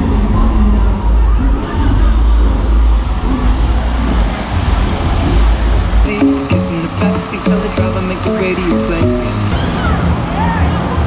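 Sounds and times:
heavy low rumble: 0.0s - 8.4s
faint crowd voices: 0.0s - 11.0s.

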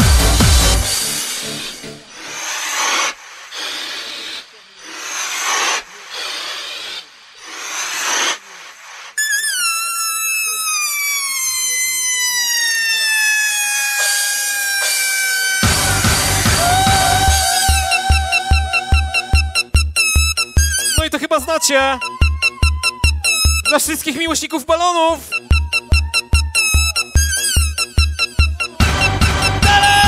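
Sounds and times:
techno music: 0.0s - 2.1s, 15.6s - 30.0s.

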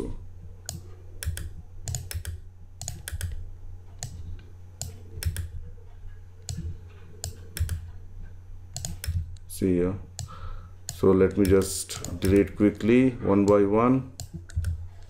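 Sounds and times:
low steady hum: 0.0s - 15.0s
computer mouse clicks: 0.6s - 5.6s, 6.4s - 8.0s, 8.7s - 9.5s, 10.2s - 12.6s, 14.2s - 15.0s
key presses: 6.4s - 7.9s, 8.8s - 9.2s, 10.9s - 12.6s.

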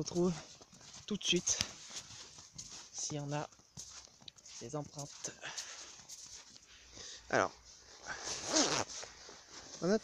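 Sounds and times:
person speaking: 0.0s - 1.8s, 2.9s - 3.6s, 4.4s - 5.8s
coat fabric rubbing microphone: 8.0s - 10.0s.

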